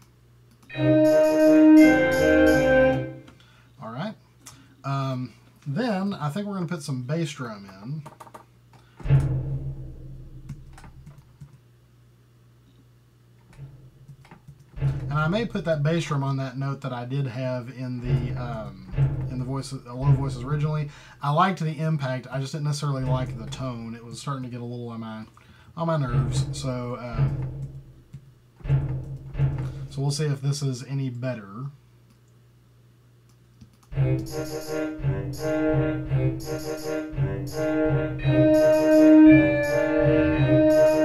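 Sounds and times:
concert bass drum strokes: 14.8 - 16.2, 18.0 - 21.0, 23.0 - 24.1, 26.0 - 30.2, 33.9 - 41.0.

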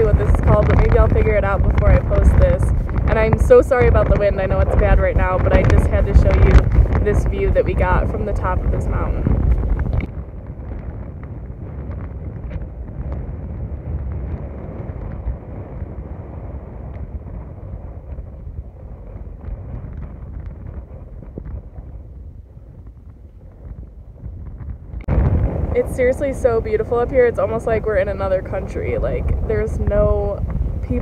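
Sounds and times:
wind buffeting microphone: 0.0 - 31.0.

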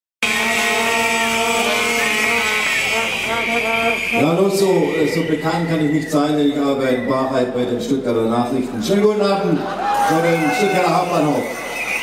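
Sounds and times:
crowd blowing plastic horns: 0.2 - 7.0, 9.7 - 12.0.

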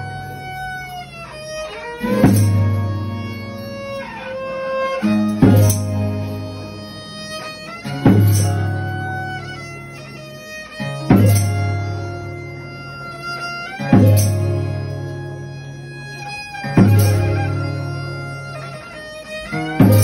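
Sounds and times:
strummed violas: 0.0 - 20.0.

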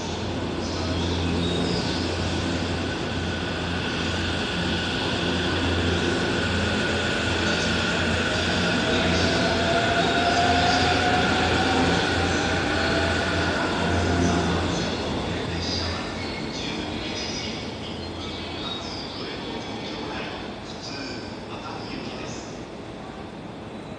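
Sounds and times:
electric train running hum: 0.0 - 23.9.

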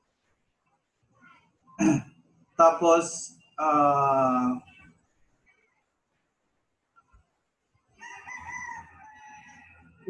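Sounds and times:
rooster crowing: 8.0 - 10.0.

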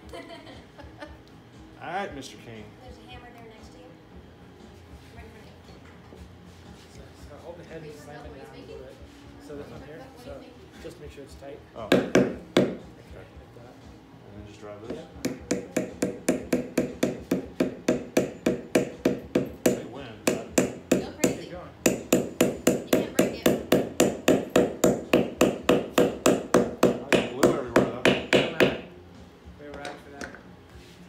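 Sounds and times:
hammer striking wooden wedge: 11.9 - 12.8, 15.2 - 28.9.

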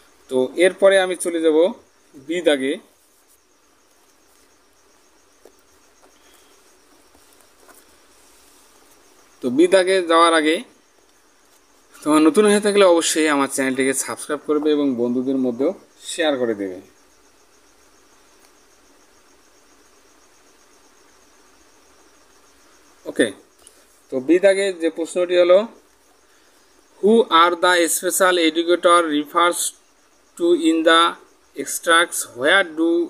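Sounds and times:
insects chirping: 0.0 - 33.0
low background hiss: 0.0 - 33.0.

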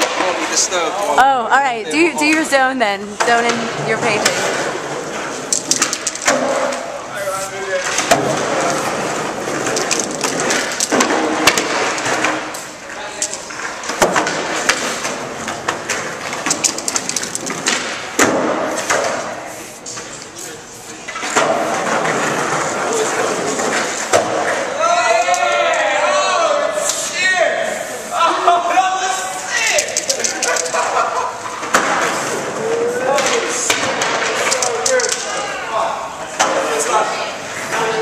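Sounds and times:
skateboards rolling and clacking: 3.5 - 20.2, 21.1 - 25.6, 30.1 - 35.4.

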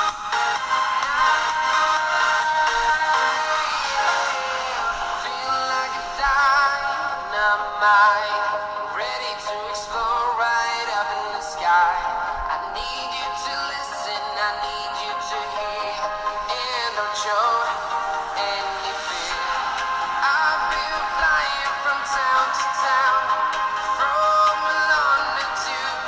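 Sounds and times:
music with singing through small speakers: 0.0 - 26.0.

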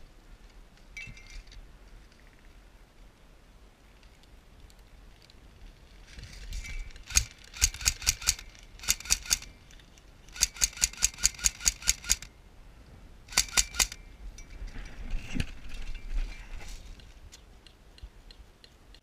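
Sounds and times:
rustling of movement: 3.8 - 18.4
airsoft gun firing rapid shots: 7.1 - 9.5, 10.4 - 12.3, 13.3 - 14.0.

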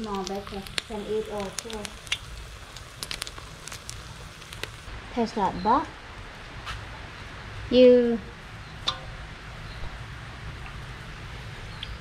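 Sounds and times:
oil crackling and popping: 0.0 - 4.9, 8.8 - 9.2, 10.6 - 12.0.

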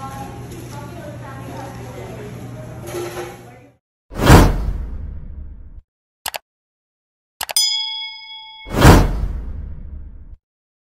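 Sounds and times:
restaurant room noise: 0.0 - 3.8
whoosh sound effect: 8.7 - 10.2.

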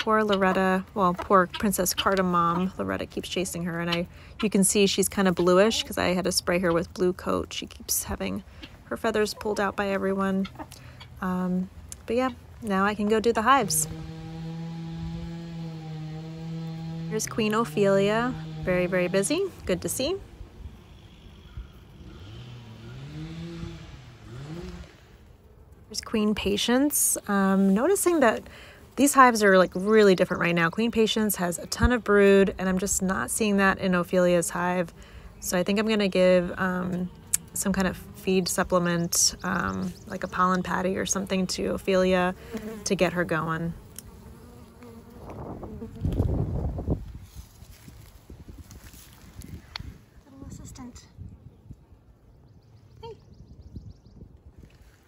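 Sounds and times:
honeybees buzzing: 8.2 - 25.3, 26.0 - 47.0
vehicle engine accelerating: 13.0 - 26.1.

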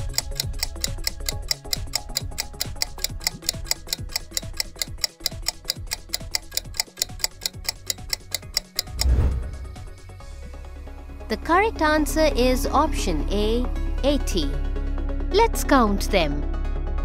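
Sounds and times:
rapid clock-like ticking: 0.0 - 10.1
background music: 0.0 - 17.0.

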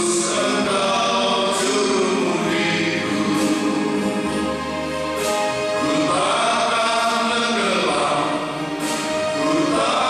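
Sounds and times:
male vocal group singing gospel: 0.0 - 10.0.

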